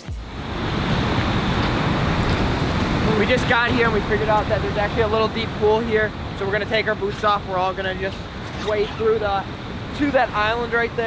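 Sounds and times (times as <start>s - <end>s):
waterfall: 0.0s - 11.0s
fast-flowing river rushing: 0.3s - 11.0s.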